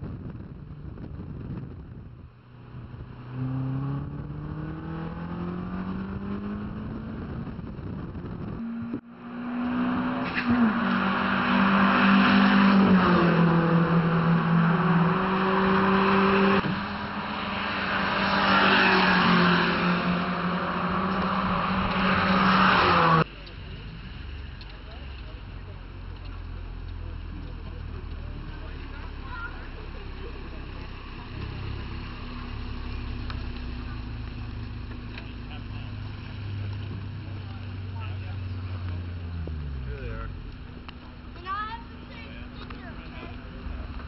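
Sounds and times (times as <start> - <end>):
wind on microphone: 0.0 - 3.2, 5.9 - 9.0
trackside car engine noise: 0.0 - 44.0
car engine accelerating: 0.1 - 44.0.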